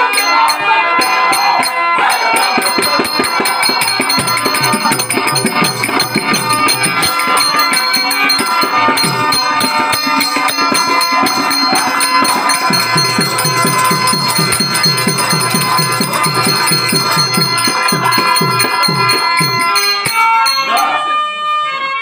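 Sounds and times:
metallic jingle of bells: 0:00.0 - 0:21.0
held organ-like notes: 0:00.0 - 0:21.6
hand drum strokes: 0:01.0 - 0:20.8.

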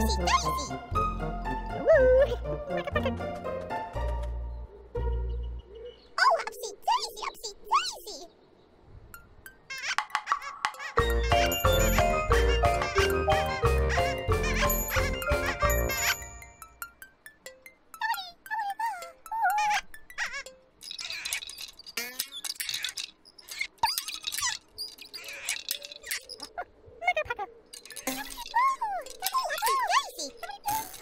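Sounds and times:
squeaky wordless character voices: 0:00.0 - 0:00.9, 0:01.7 - 0:03.4, 0:06.1 - 0:08.4, 0:09.7 - 0:16.4, 0:18.0 - 0:31.0
gentle children's show music: 0:00.0 - 0:08.4, 0:09.1 - 0:22.9, 0:28.0 - 0:31.0.

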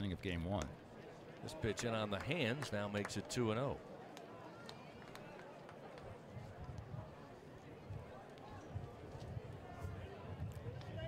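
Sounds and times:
faint crowd murmur: 0:00.2 - 0:11.0.

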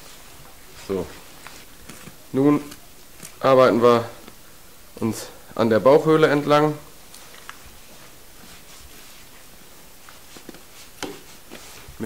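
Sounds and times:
low steady hiss: 0:00.0 - 0:12.0.

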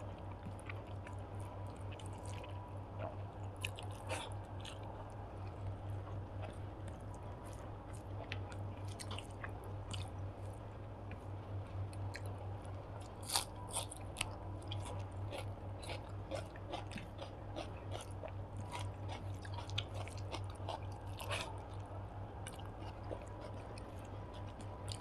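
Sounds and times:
close chewing with wet clicks: 0:00.0 - 0:25.0
low steady hum: 0:00.0 - 0:25.0.

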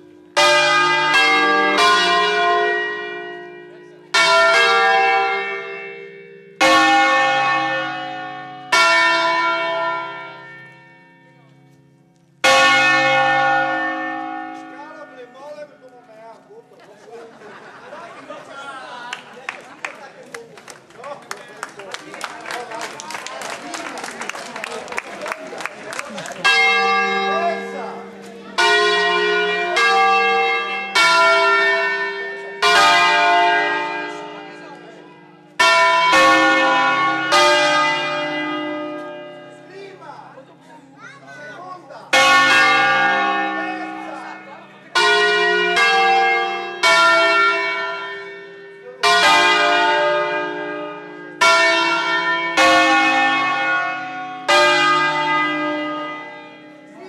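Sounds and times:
church bells ringing: 0:00.0 - 0:18.5, 0:21.4 - 0:57.0.

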